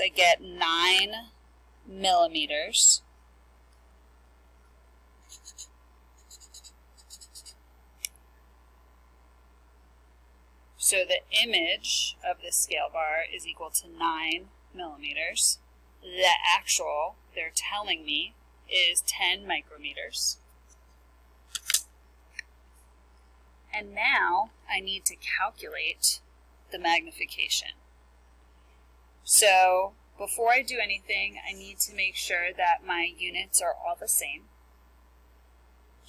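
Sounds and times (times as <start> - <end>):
marker squeaking on whiteboard: 5.3 - 7.6
card clicking on whiteboard: 21.5 - 21.8.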